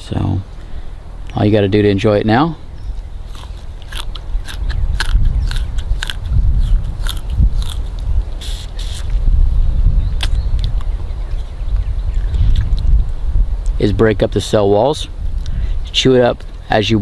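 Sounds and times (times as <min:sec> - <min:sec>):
wind rumble on microphone: 0:02.6 - 0:17.0
person chewing crunchy stalk: 0:03.2 - 0:09.2, 0:12.1 - 0:12.9.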